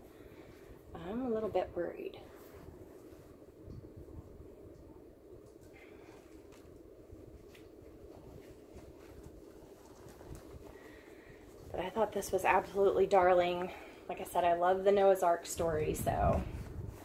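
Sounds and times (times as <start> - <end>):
steady low hum: 0.0 - 17.0
soft taps and handling sounds: 4.7 - 12.7.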